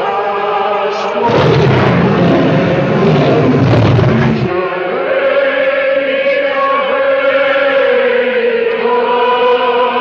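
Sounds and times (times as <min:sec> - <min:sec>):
choir singing a slow hymn: 0:00.0 - 0:01.4, 0:04.3 - 0:10.0.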